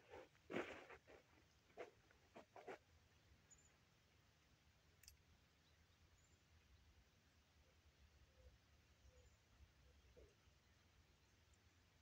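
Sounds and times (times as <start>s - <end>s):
faint high click: 5.0s - 5.2s.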